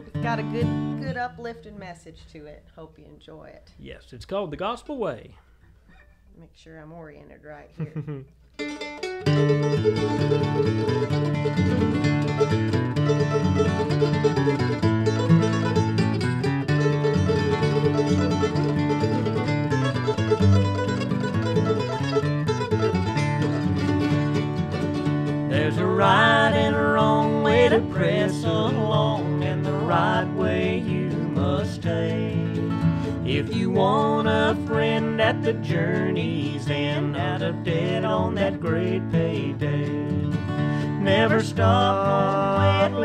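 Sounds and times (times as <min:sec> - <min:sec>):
mandolin and acoustic guitar: 0:00.0 - 0:03.7, 0:05.4 - 0:43.0
woman and man singing harmony: 0:25.5 - 0:40.1, 0:40.8 - 0:43.0.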